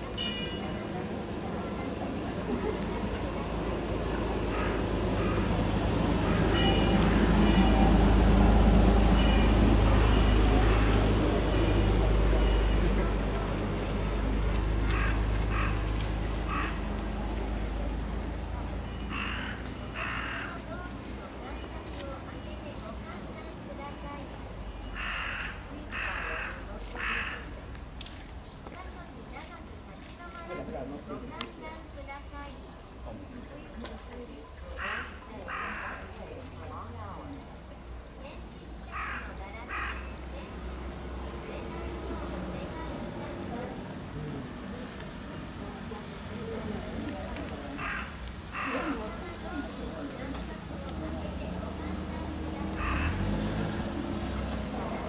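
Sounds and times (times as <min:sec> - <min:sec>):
murmur of people talking: 0:00.0 - 0:55.0
harsh raspy bird calls: 0:04.4 - 0:07.6, 0:09.2 - 0:11.2, 0:14.5 - 0:16.9, 0:19.0 - 0:20.7, 0:24.9 - 0:27.6, 0:34.7 - 0:36.2, 0:38.8 - 0:40.7, 0:47.8 - 0:49.0, 0:52.7 - 0:53.5
crow cawing: 0:04.5 - 0:05.6, 0:06.2 - 0:07.4, 0:10.6 - 0:11.0, 0:14.9 - 0:16.9, 0:19.1 - 0:20.6, 0:25.0 - 0:27.6, 0:34.8 - 0:36.2, 0:38.9 - 0:40.2, 0:47.8 - 0:49.0, 0:52.8 - 0:53.3.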